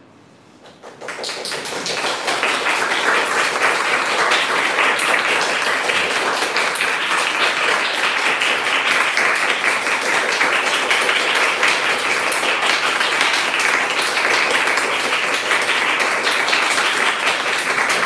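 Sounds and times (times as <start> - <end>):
audience applauding: 0.6 - 18.0.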